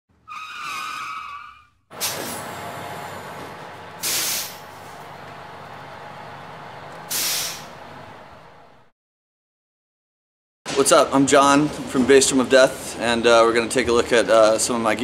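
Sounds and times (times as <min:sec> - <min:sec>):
air-brake hisses: 0:01.9 - 0:03.3, 0:04.0 - 0:05.0, 0:07.0 - 0:07.8
bus engine rumble with hiss: 0:01.9 - 0:08.9.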